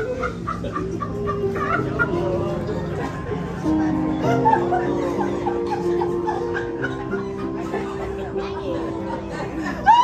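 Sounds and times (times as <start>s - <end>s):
high-pitched giggling: 0.0s - 10.0s
worship music chord: 1.8s - 9.7s.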